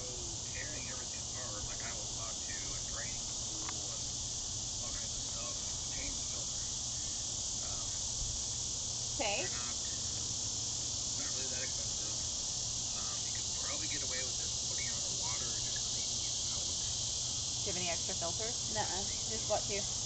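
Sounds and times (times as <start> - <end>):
crickets chirping: 0.0 - 20.0
low steady hum: 0.0 - 20.0.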